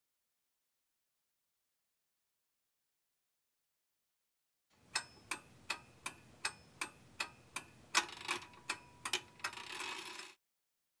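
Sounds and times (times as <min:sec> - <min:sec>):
faint steady tone: 0:04.8 - 0:09.6
clock-like ticking: 0:04.8 - 0:10.3.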